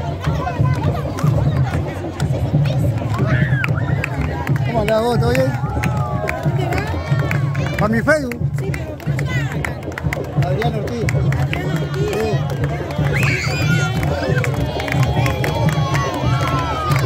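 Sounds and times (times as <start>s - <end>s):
crowd chatter and shouts: 0.0s - 17.0s
parade drumming: 0.0s - 17.0s.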